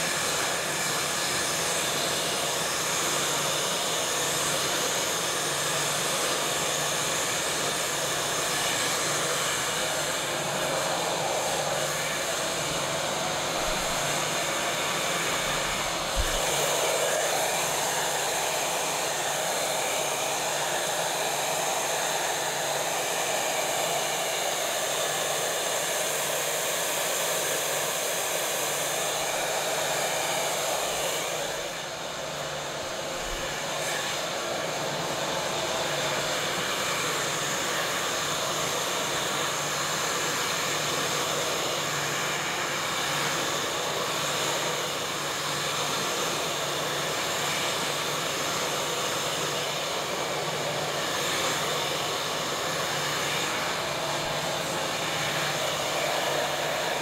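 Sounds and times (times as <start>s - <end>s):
hair dryer blowing: 0.0s - 57.0s.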